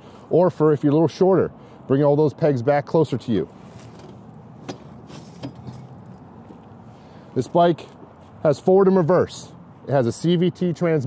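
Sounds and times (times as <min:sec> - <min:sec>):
handling noise: 0:03.6 - 0:06.8.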